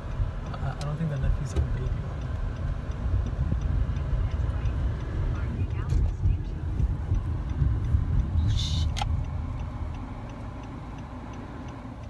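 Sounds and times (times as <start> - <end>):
engine and tyre rumble: 0.0 - 12.0
faint ticks: 0.0 - 12.0.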